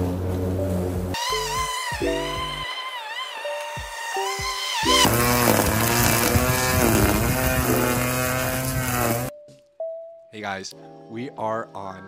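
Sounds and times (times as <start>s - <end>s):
electric lawn mower cutting grass: 0.0s - 9.3s.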